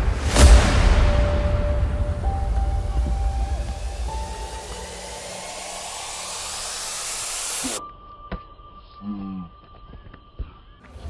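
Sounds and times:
hissing white-noise sweep: 0.0s - 7.8s.

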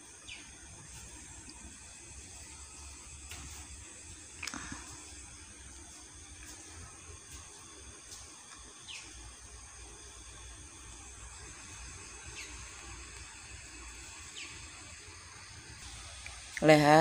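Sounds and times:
night insects droning: 0.0s - 17.0s.

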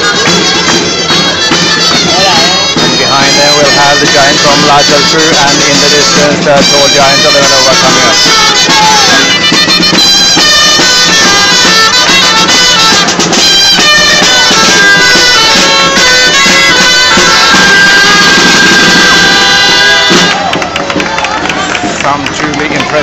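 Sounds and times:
crowd: 0.0s - 23.0s
drum: 0.0s - 23.0s
shawms playing dance tune: 0.0s - 23.0s.

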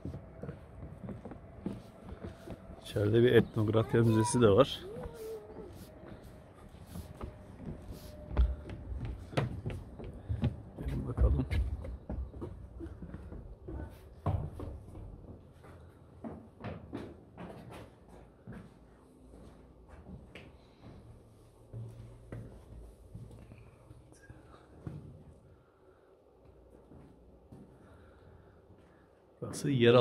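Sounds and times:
footsteps on stone floor: 0.0s - 23.7s.

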